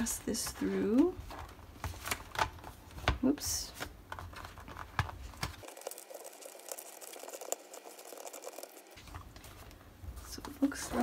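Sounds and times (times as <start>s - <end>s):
paper rustling and crinkling: 0.0s - 3.1s.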